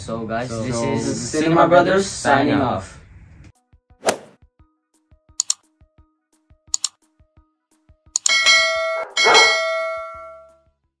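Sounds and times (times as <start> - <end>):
click: 5.4 - 5.6, 6.8 - 7.0, 8.2 - 8.4
notification bell ding: 8.2 - 10.5.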